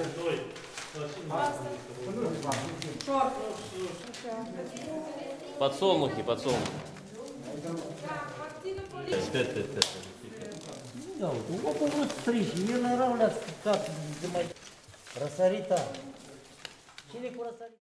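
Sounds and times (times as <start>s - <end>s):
paper rustling: 0.0s - 17.8s
people talking indistinctly: 0.0s - 17.8s.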